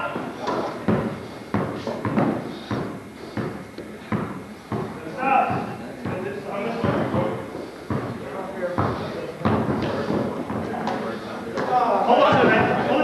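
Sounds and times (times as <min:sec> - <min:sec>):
basketball bouncing on gym floor: 0:00.1 - 0:11.0.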